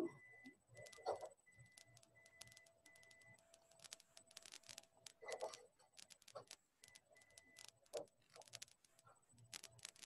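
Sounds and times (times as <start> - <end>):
faint scattered clicks: 0.0 - 10.0
faint steady hum: 0.0 - 10.0.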